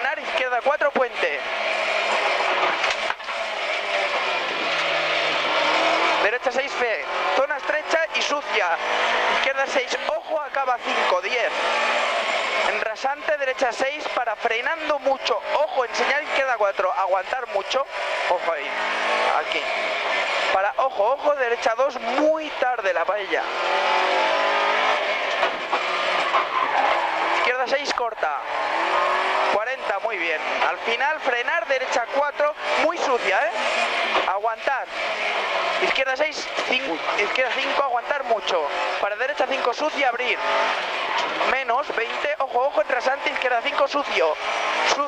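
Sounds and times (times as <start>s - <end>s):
car engine under load: 0.0s - 45.0s.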